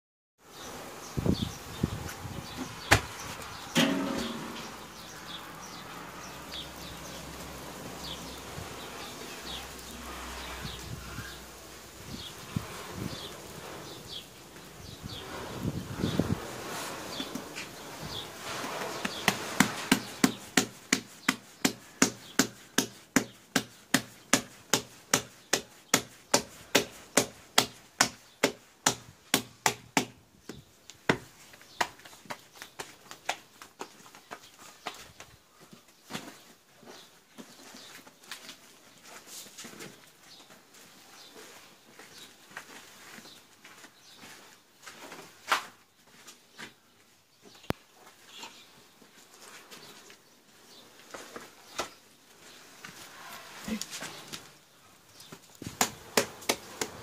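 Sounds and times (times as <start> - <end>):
knocks: 3.8 - 4.7
hand slapping bread dough: 19.0 - 33.6, 55.3 - 57.0.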